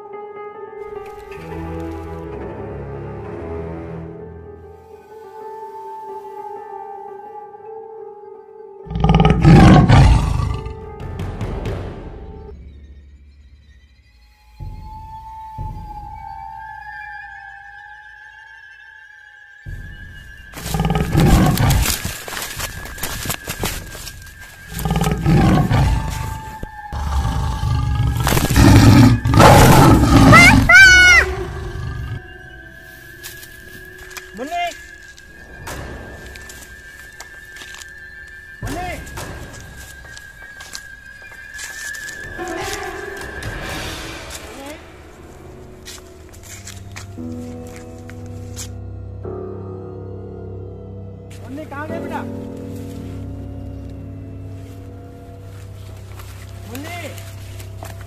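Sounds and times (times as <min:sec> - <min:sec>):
tiger roar: 0:08.9 - 0:10.8, 0:20.6 - 0:22.1, 0:24.7 - 0:32.3.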